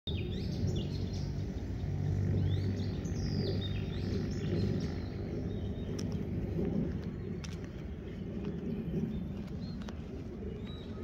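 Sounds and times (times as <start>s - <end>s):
birds chirping: 0.1s - 11.0s
steady low rumble: 0.1s - 11.0s.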